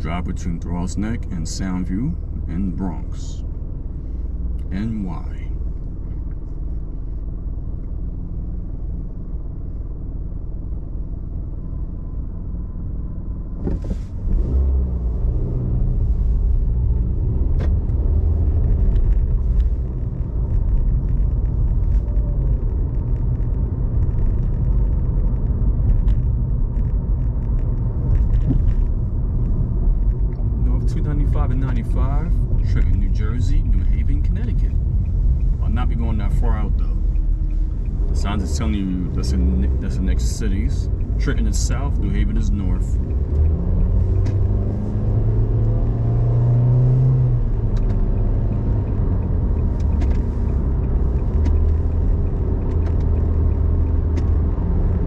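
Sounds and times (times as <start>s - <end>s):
car engine rumble: 0.0s - 55.0s.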